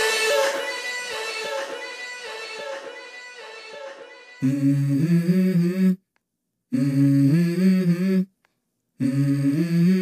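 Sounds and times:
woman humming: 0:04.4 - 0:06.1, 0:06.7 - 0:08.4, 0:09.0 - 0:10.0.

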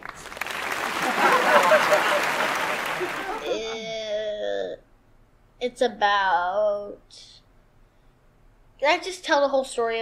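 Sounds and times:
crowd applauding: 0:00.0 - 0:03.6.

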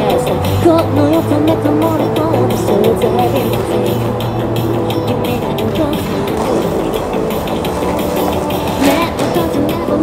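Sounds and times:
woman singing: 0:00.0 - 0:04.2, 0:04.8 - 0:07.3, 0:08.6 - 0:10.0
electronic pop backing track: 0:00.0 - 0:10.0.

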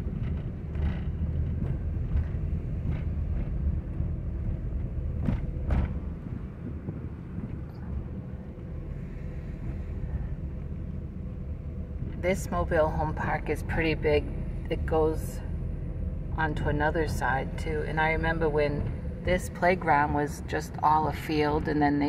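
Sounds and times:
car engine and tyre rumble: 0:00.0 - 0:22.0.

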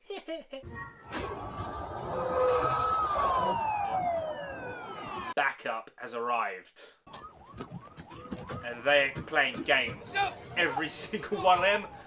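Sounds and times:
emergency vehicle siren wail: 0:00.8 - 0:05.4, 0:07.1 - 0:09.3, 0:10.0 - 0:12.0
rumble of vehicles: 0:07.1 - 0:12.0.

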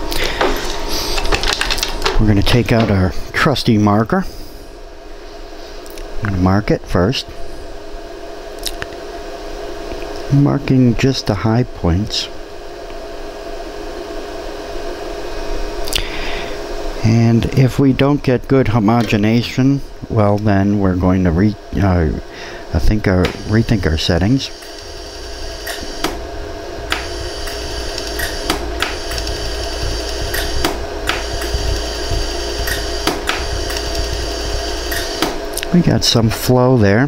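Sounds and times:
machine fan whirring: 0:00.0 - 0:37.0
steady hum: 0:00.0 - 0:37.0
laser welder sharp ticks: 0:24.6 - 0:26.3, 0:26.9 - 0:35.7.

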